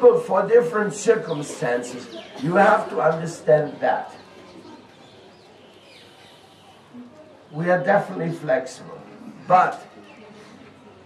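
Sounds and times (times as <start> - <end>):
faint bird chirps: 4.1 - 7.6.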